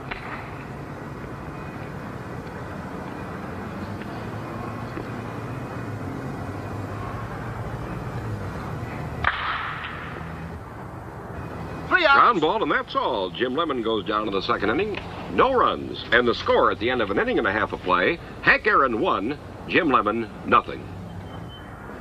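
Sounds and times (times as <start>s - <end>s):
bat cracking a ball: 0.0s - 0.6s, 9.2s - 10.2s
low hum and hiss: 0.0s - 22.0s.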